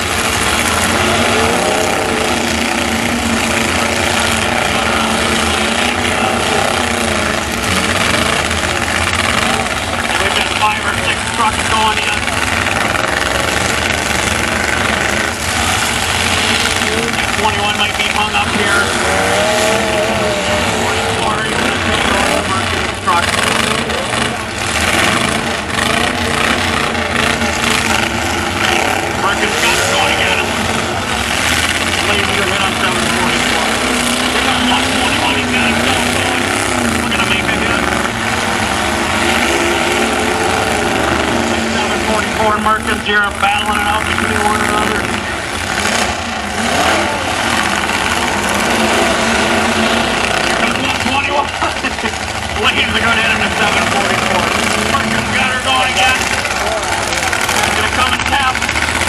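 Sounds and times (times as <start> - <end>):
crowd talking and calling out: 0.0 - 59.0
truck engines revving: 0.0 - 59.0.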